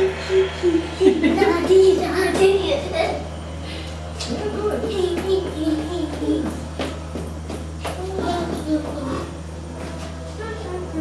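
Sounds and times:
children's voices talking: 0:00.0 - 0:03.3, 0:04.2 - 0:06.8, 0:07.8 - 0:09.5
steady low hum: 0:00.0 - 0:11.0.

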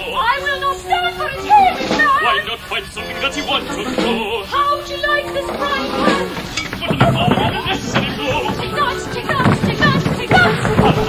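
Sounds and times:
instrumental accompaniment: 0:00.0 - 0:11.0
opera voices singing: 0:00.0 - 0:11.0.

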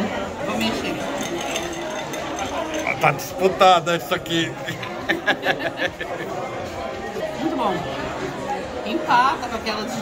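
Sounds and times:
background chatter: 0:00.0 - 0:10.0
ice clinking against a glass: 0:00.5 - 0:03.4.

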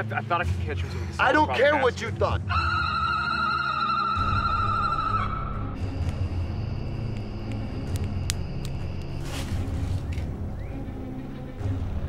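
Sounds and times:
low rumbling drone: 0:02.6 - 0:12.0.

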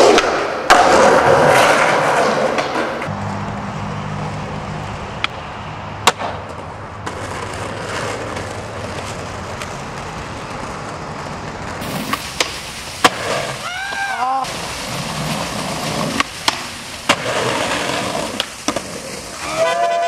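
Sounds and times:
skateboard popping and landing: 0:00.0 - 0:03.1, 0:06.0 - 0:20.0
skateboard wheels rolling on asphalt: 0:00.0 - 0:20.0.

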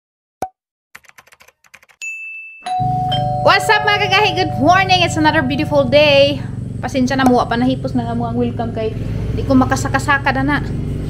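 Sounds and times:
keyboard typing clicks: 0:01.0 - 0:02.0.

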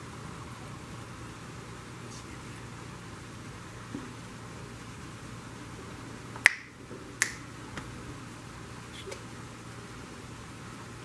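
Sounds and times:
steady background hiss: 0:00.0 - 0:11.0.

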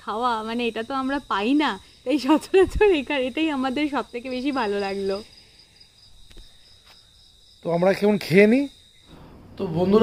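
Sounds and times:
crickets trilling: 0:00.0 - 0:10.0.

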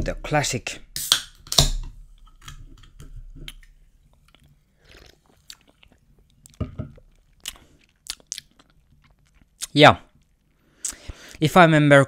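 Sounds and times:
person sipping and swallowing: 0:03.4 - 0:11.2.

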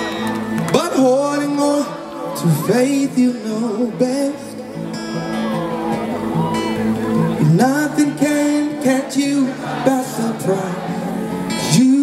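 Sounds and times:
acoustic guitar: 0:00.0 - 0:12.0.

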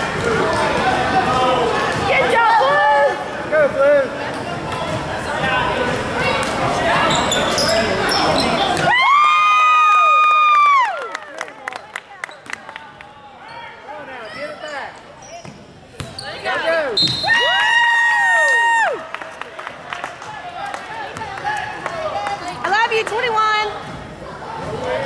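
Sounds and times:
gym crowd shouting: 0:00.3 - 0:03.9.

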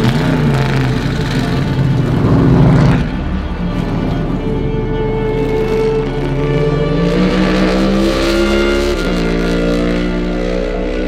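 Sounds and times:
race car engine accelerating: 0:00.0 - 0:11.0
background music: 0:01.2 - 0:11.0.

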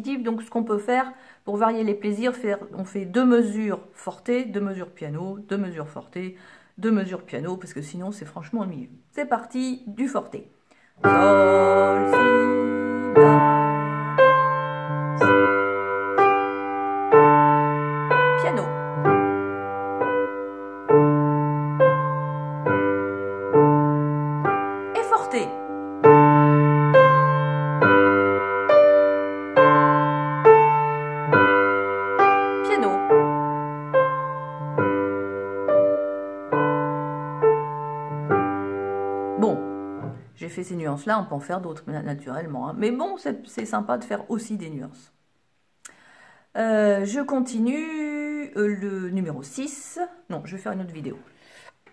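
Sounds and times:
upright piano playing: 0:11.0 - 0:40.3.

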